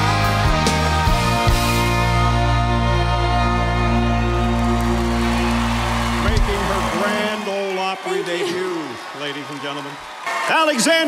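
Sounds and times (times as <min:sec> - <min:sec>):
crowd applause and cheering: 0:00.0 - 0:11.0.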